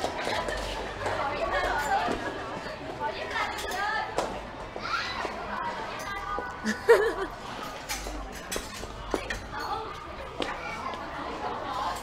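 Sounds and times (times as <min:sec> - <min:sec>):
people chattering and calling out: 0:00.0 - 0:12.0.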